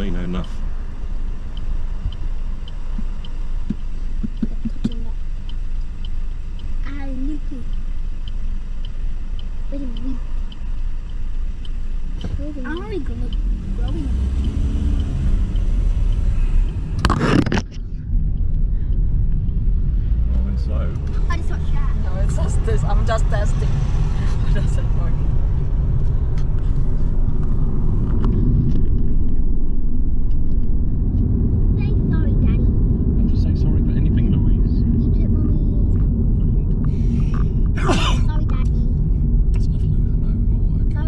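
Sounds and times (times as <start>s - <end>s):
car road and engine rumble: 0.0s - 41.0s.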